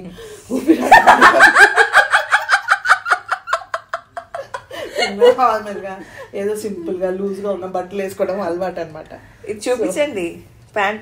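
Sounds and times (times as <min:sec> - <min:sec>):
women laughing: 0:00.5 - 0:06.0.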